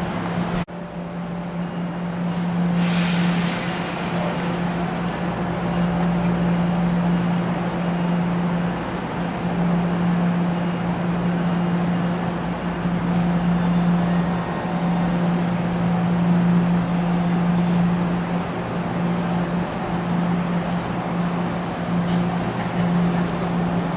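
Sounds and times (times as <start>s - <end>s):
train electric hum: 0.0s - 23.9s
train wheels rumbling: 11.6s - 23.9s.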